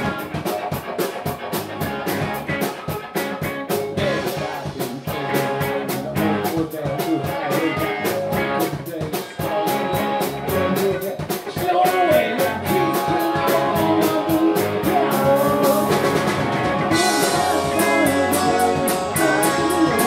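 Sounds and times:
drum kit: 0.0 - 20.0
electric guitar: 0.0 - 20.0
fast cymbal beat: 0.0 - 20.0.

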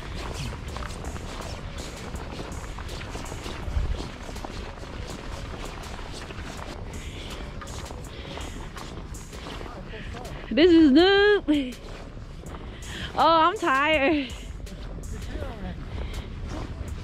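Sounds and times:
footsteps in loose sand: 0.0 - 17.0
low rumble: 0.0 - 17.0.

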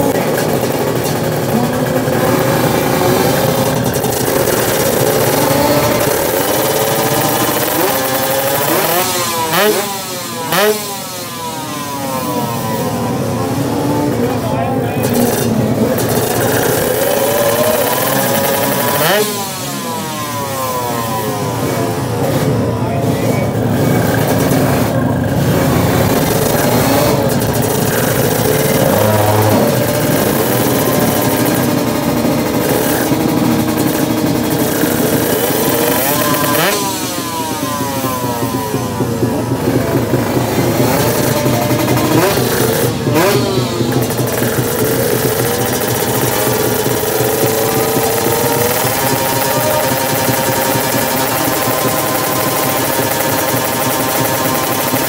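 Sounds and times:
motorcycle accelerating: 0.0 - 55.0
motorcycle engines revving hard: 0.0 - 55.0.

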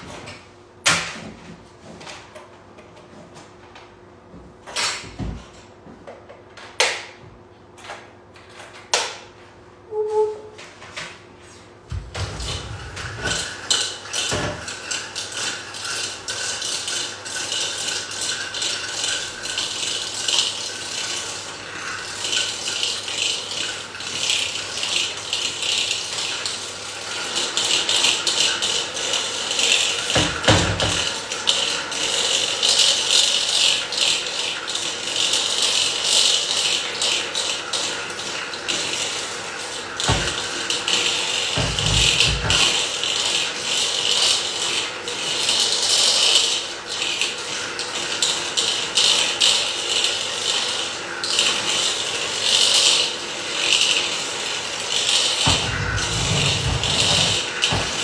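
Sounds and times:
electric hand mixer whirring: 55.3 - 58.0.

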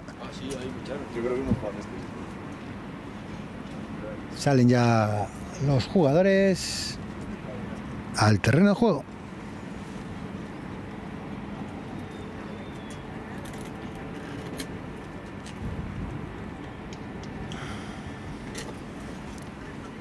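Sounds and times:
outdoor background rumble: 0.0 - 20.0.

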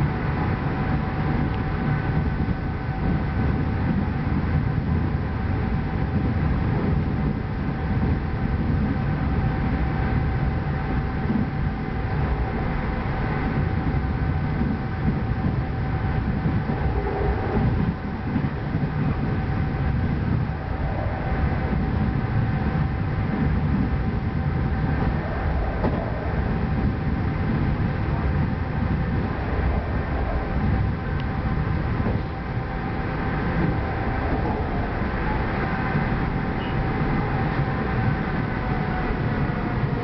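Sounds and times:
train wheels rumbling on rail: 0.0 - 40.0
train whine: 0.0 - 40.0.

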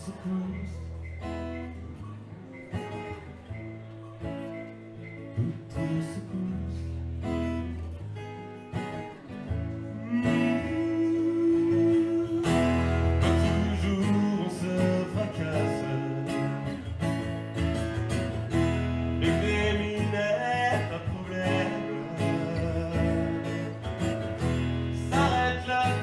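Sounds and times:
man singing: 0.0 - 1.0, 5.4 - 7.1, 9.7 - 17.0, 19.1 - 26.0
acoustic guitar: 0.0 - 26.0.

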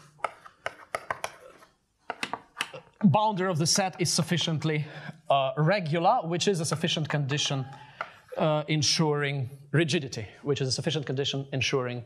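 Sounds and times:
chalk tapping and scraping on blackboard: 0.0 - 2.7.

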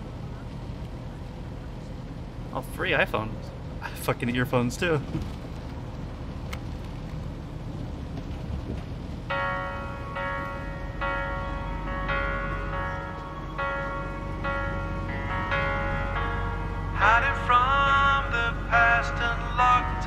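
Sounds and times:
bus interior rumble: 0.0 - 20.0
music with held chords: 9.3 - 20.0.

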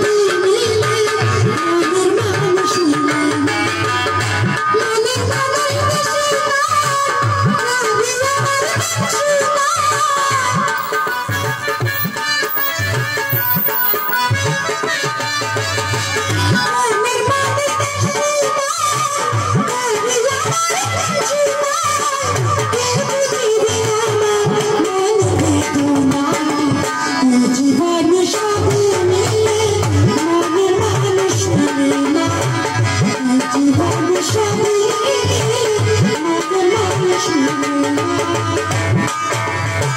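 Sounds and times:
dholak drum bass strokes: 0.0 - 39.9
held melody line: 10.6 - 15.5
barrel drum beat: 10.8 - 14.8.

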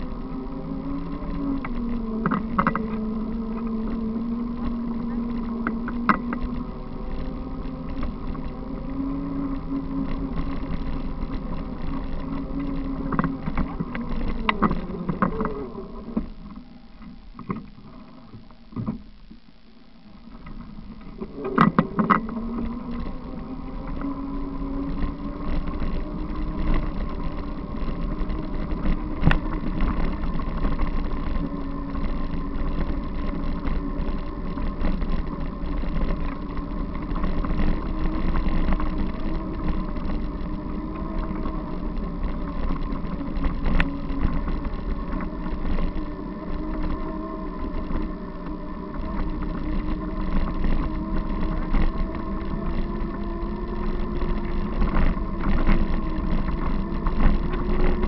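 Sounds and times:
bicycle tyres rumbling on dirt: 0.0 - 58.0.

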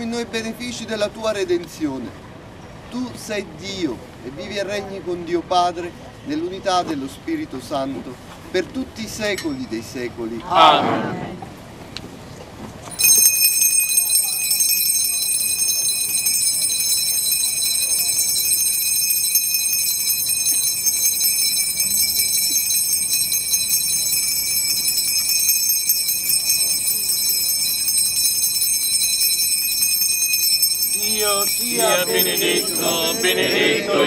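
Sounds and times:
hand bells jangling: 12.9 - 34.0.

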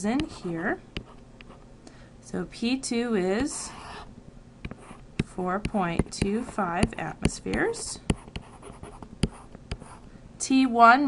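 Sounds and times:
stylus scratching on tablet: 0.0 - 1.6, 3.4 - 4.1, 5.7 - 10.0.

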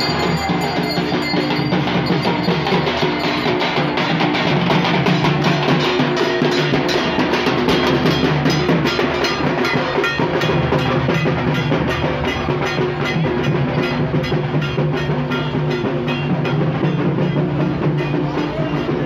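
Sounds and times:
drums and percussion beat: 0.0 - 19.0.

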